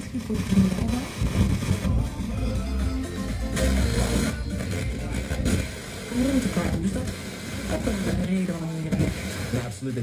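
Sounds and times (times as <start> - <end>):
bass-heavy music over loudspeakers: 0.5 - 9.7.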